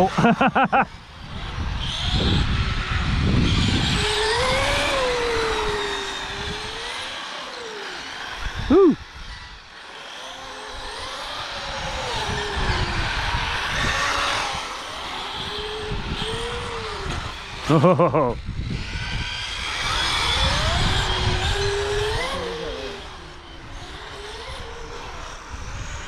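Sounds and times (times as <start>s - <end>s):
rc car motors whining: 0.0s - 26.0s.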